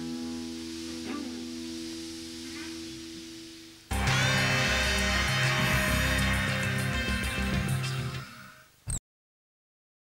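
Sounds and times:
electric guitar chord ringing: 0.0 - 8.2
theme music with a beat: 3.9 - 8.2.

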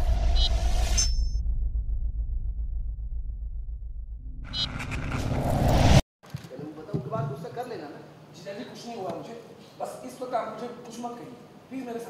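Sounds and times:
rising whoosh: 0.0 - 6.0
deep pulsing rumble: 1.4 - 5.5.

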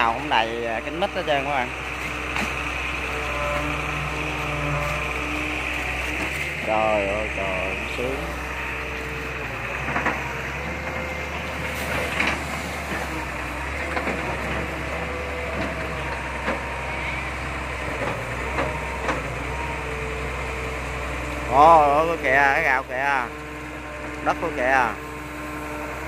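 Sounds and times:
diesel engine running under load: 0.0 - 26.0.

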